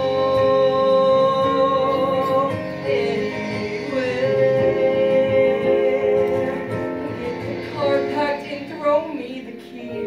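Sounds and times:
instrumental accompaniment: 0:00.0 - 0:10.0
man singing with held notes: 0:00.0 - 0:10.0.

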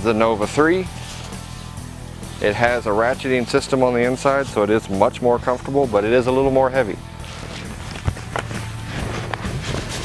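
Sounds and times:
background music: 0:00.0 - 0:10.0
cloth rustling: 0:00.8 - 0:02.5, 0:07.1 - 0:10.0.

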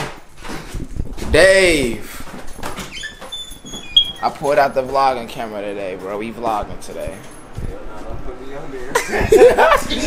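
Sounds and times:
thin high-pitched squeaks: 0:02.8 - 0:04.4.

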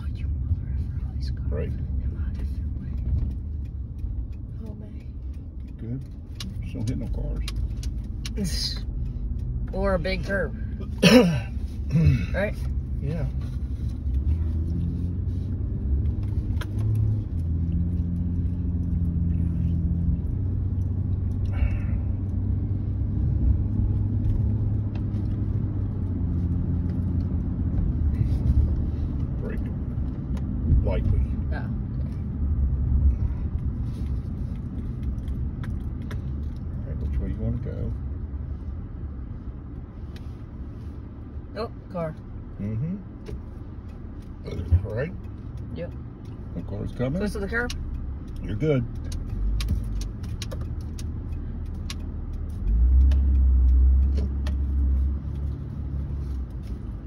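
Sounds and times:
truck engine and road noise: 0:00.0 - 0:57.0.

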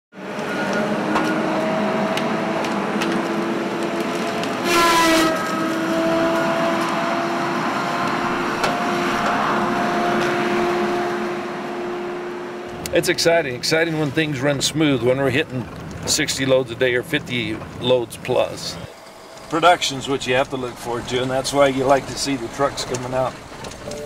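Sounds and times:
diesel engine drone: 0:00.2 - 0:24.0.

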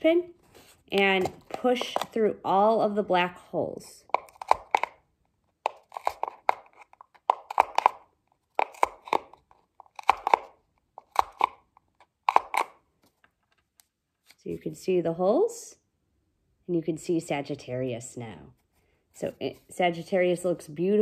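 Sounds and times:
push pin piercing paper: 0:04.0 - 0:05.0, 0:05.6 - 0:12.8.

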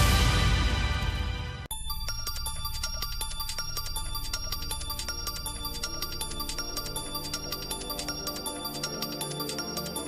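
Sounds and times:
electronic news theme music: 0:01.7 - 0:10.0.

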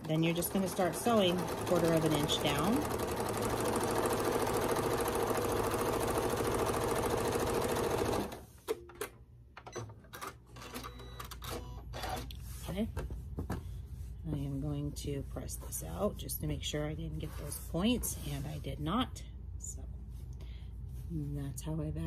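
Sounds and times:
sewing machine running: 0:00.0 - 0:08.4.

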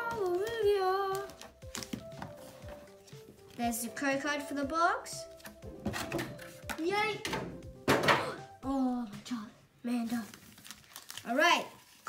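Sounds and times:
foil packs handled on table: 0:10.0 - 0:12.0.

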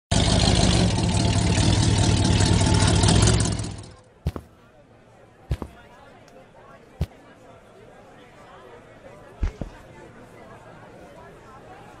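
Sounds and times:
truck engine running: 0:00.1 - 0:04.5
boot footsteps on pavement: 0:04.3 - 0:04.6, 0:05.5 - 0:05.8, 0:09.4 - 0:09.8.

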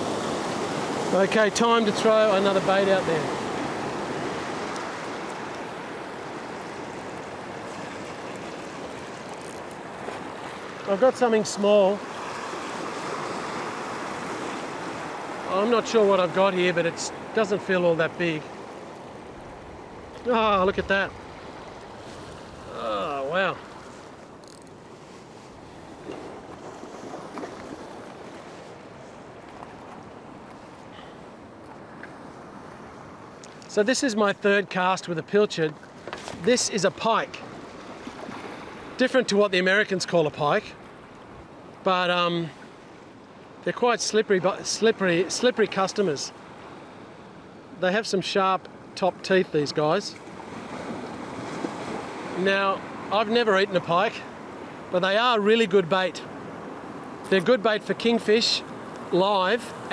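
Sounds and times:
surf rushing over rocks: 0:00.0 - 0:18.5
surf washing over rocks: 0:00.0 - 0:46.8, 0:49.3 - 0:59.9
man speaking: 0:01.1 - 0:03.4, 0:10.9 - 0:12.0, 0:15.5 - 0:18.5, 0:20.2 - 0:21.1, 0:22.7 - 0:23.6, 0:33.7 - 0:35.7, 0:36.4 - 0:37.4, 0:39.0 - 0:40.7, 0:43.7 - 0:46.3, 0:47.8 - 0:50.1, 0:52.4 - 0:54.3, 0:55.0 - 0:56.2, 0:57.3 - 0:59.7.

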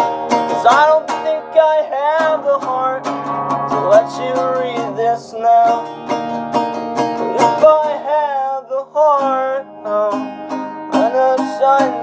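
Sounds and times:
acoustic guitar strumming: 0:00.0 - 0:12.0
young man singing: 0:00.4 - 0:06.3, 0:07.2 - 0:12.0.

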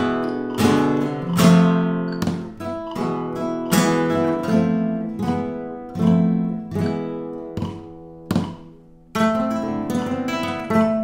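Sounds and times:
flamenco guitar strumming: 0:00.0 - 0:11.0.

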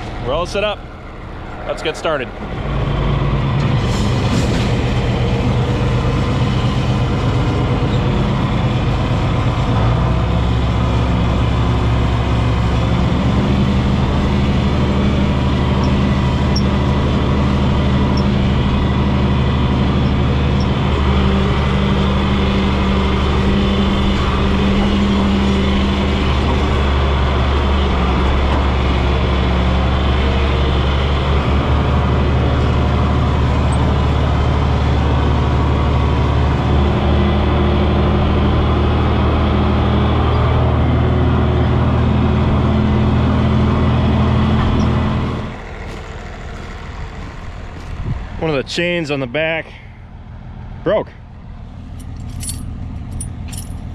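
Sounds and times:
tractor engine running under load: 0:00.0 - 0:53.9.

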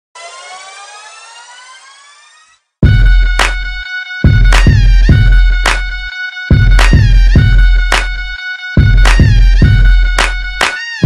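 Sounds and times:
rising electronic synth tone: 0:00.2 - 0:05.7.

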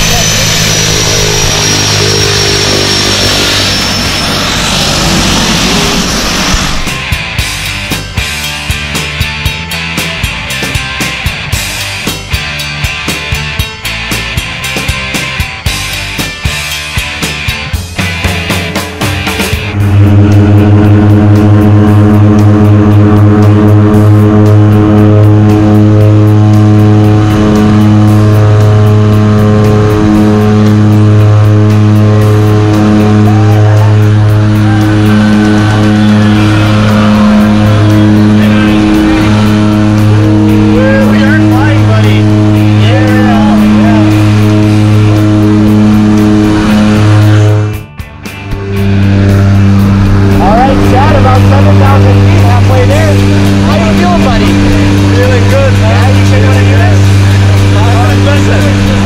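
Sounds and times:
raised voices: 0:00.0 - 0:07.1, 0:31.8 - 0:47.7, 0:50.0 - 0:59.0
propeller drone: 0:00.0 - 0:59.0.

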